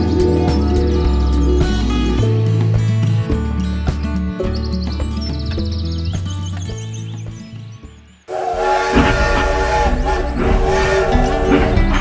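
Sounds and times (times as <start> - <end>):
steam hiss with whistle tone: 8.3 - 12.0.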